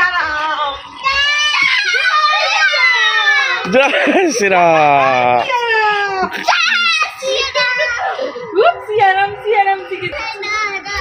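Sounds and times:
child screaming: 0:01.0 - 0:03.7, 0:06.4 - 0:08.5.

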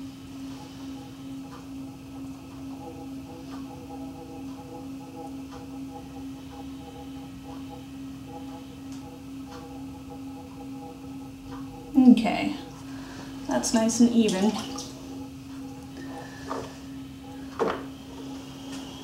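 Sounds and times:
faint motor whine: 0:00.0 - 0:19.0
potter's wheel motor hum: 0:00.0 - 0:19.0.

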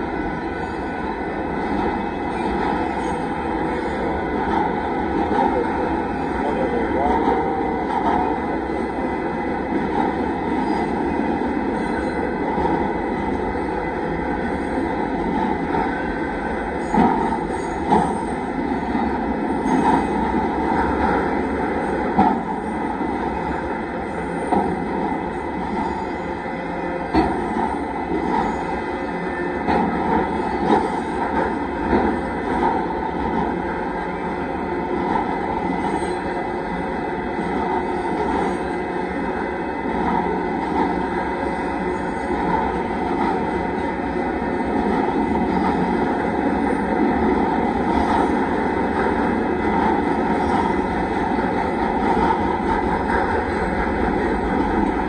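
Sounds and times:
train wheels rumbling on rail: 0:00.0 - 0:55.0.

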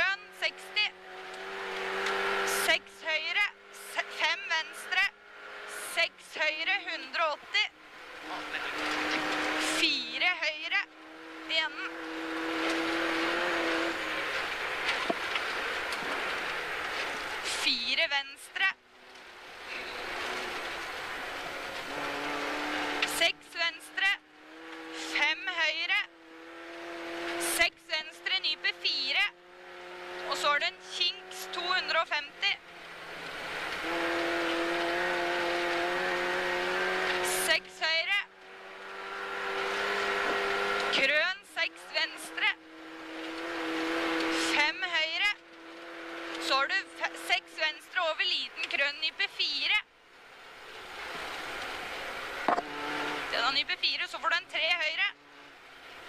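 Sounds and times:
engine crackling on gear change: 0:00.0 - 0:17.6, 0:18.8 - 0:49.1, 0:50.1 - 0:56.0
rally car engine from inside cabin: 0:00.0 - 0:49.8, 0:50.6 - 0:56.0.

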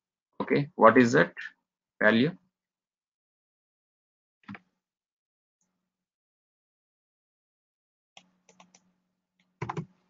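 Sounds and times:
typing on computer keyboard: 0:09.6 - 0:09.9.

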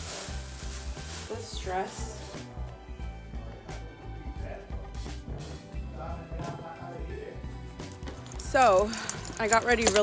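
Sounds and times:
plastic bag rustling: 0:00.0 - 0:02.4
background music with singing: 0:00.0 - 0:10.0.

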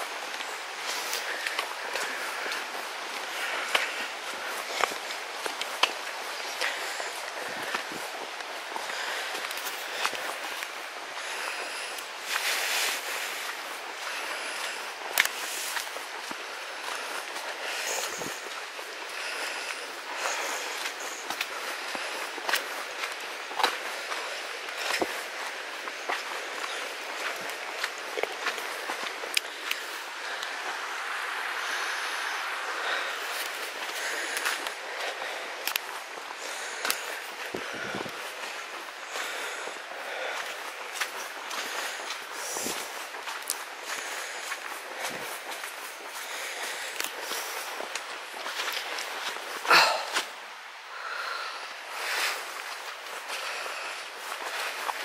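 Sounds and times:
footsteps crunching on stony track: 0:00.0 - 0:55.0
steady background hiss: 0:00.0 - 0:55.0.

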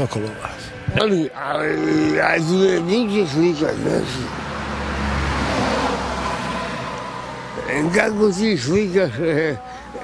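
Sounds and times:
vehicle passing on road: 0:00.3 - 0:10.0.

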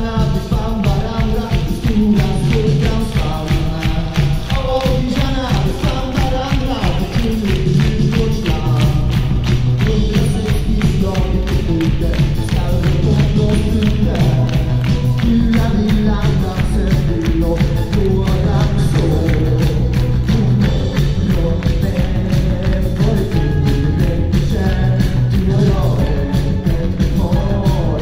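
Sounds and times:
electric guitar: 0:00.0 - 0:28.0
live rock band playing: 0:00.0 - 0:28.0
person singing: 0:00.0 - 0:28.0.

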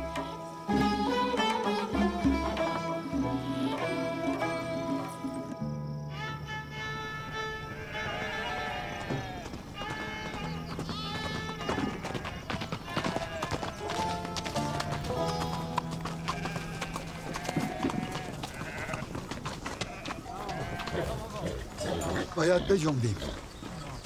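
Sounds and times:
background music: 0:00.0 - 0:09.0, 0:10.0 - 0:18.2
sheep bleating: 0:06.9 - 0:13.8, 0:16.2 - 0:19.1, 0:19.7 - 0:23.1
horse hooves clip-clopping: 0:07.9 - 0:24.0.

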